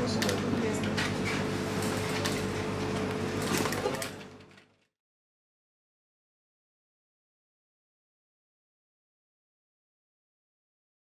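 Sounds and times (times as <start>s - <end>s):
room hum: 0.0s - 4.9s.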